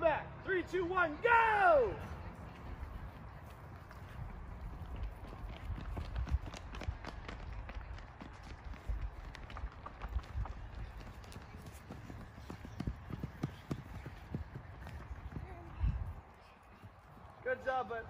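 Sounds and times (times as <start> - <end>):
footsteps running on dry grass: 3.4 - 17.6.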